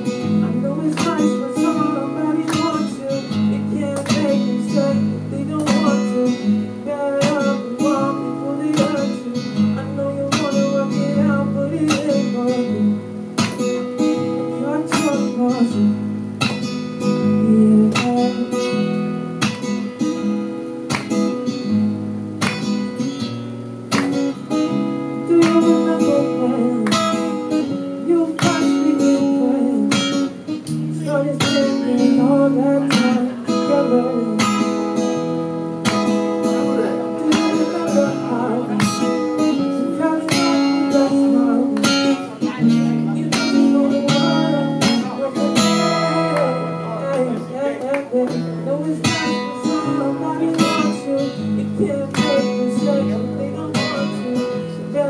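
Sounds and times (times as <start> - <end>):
acoustic guitar strumming: 0.0 - 55.0.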